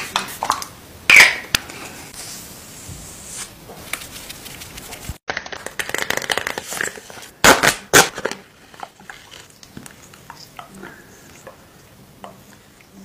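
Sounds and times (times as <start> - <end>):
paper mask crinkling: 3.8 - 7.3.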